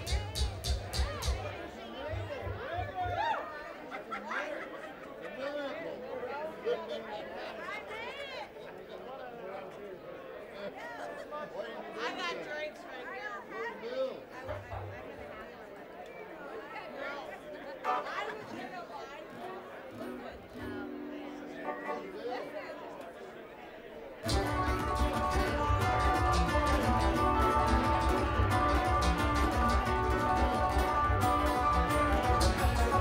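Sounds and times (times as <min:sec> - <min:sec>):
bluegrass string band playing: 0:00.0 - 0:03.2, 0:19.8 - 0:23.0, 0:24.2 - 0:33.0
steady bass beat: 0:00.0 - 0:03.2, 0:24.3 - 0:33.0
audience chatter: 0:00.0 - 0:33.0
held instrument notes: 0:24.2 - 0:33.0.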